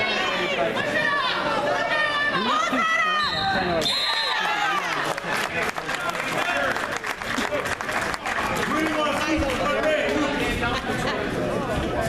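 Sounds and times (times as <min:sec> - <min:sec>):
spectators and coaches yelling: 0:00.0 - 0:05.2
whistle tone: 0:03.2 - 0:04.5.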